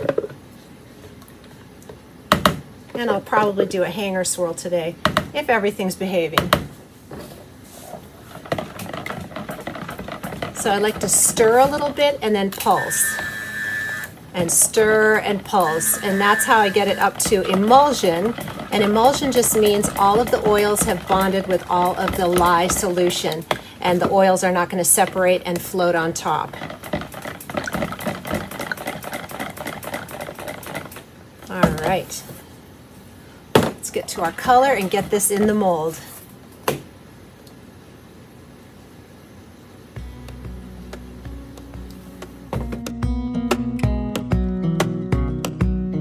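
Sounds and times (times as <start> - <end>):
stick blender running: 8.4 - 12.0, 12.6 - 23.3
blender head knocking on container: 15.8 - 23.2.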